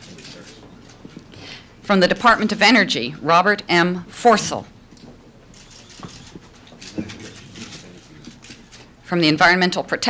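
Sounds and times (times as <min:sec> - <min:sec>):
faint murmur of voice: 0:06.8 - 0:08.7.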